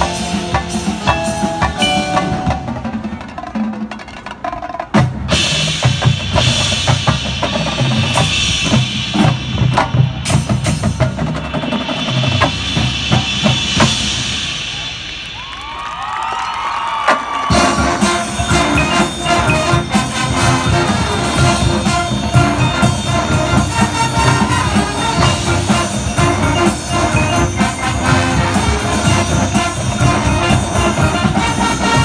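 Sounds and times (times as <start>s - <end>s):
sustained band chords: 0.0s - 3.3s, 17.5s - 32.0s
marching band drums: 0.0s - 32.0s.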